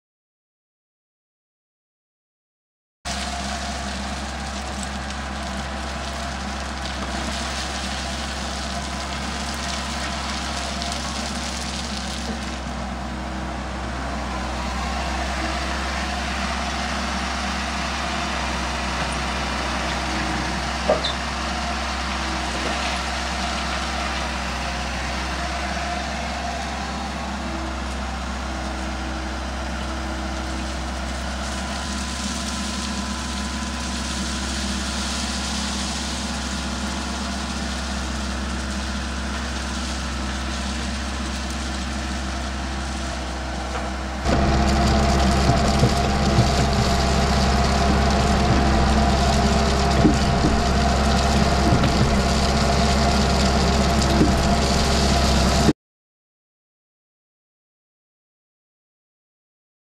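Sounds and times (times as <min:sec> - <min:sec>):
crushed stone pouring: 0:03.1 - 0:13.0, 0:14.2 - 0:55.7
excavator diesel engine running: 0:03.1 - 0:55.7.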